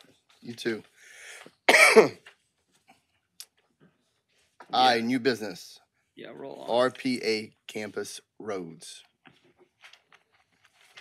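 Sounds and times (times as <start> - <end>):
short breath: 1.0 - 1.6
person clearing throat: 1.7 - 2.2.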